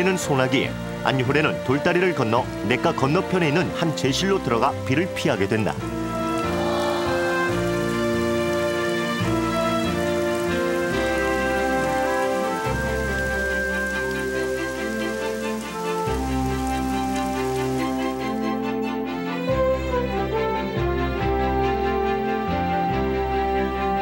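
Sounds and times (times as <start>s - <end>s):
rain shower: 0.0s - 24.0s
slow music of held chords: 0.0s - 24.0s.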